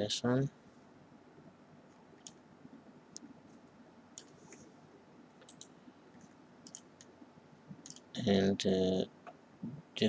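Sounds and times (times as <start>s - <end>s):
computer mouse clicks: 2.2s - 2.4s, 4.2s - 4.6s, 5.4s - 8.1s.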